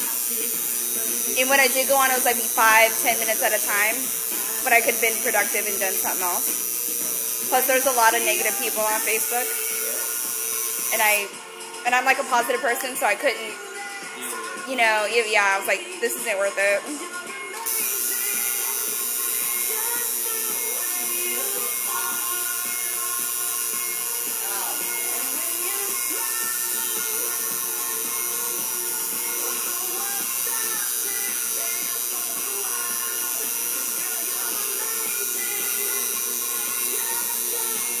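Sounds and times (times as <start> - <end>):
tattoo machine buzzing: 0.0 - 15.6, 17.4 - 38.0
background music: 0.0 - 38.0.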